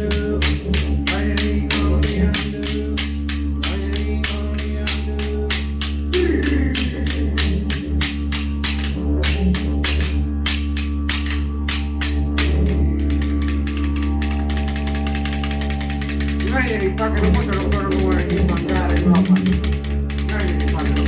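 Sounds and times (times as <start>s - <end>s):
boomerangs clapped together: 0.0s - 21.0s
didgeridoo droning: 0.0s - 21.0s
person calling out: 5.0s - 7.9s, 16.4s - 19.7s.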